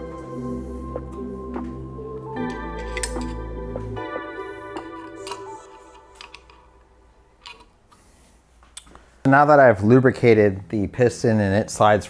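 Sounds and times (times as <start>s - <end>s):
soft background music: 0.0s - 7.5s.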